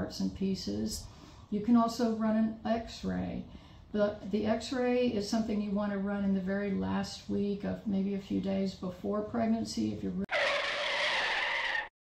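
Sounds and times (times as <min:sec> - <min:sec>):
tyres skidding screech effect: 0:10.3 - 0:12.0.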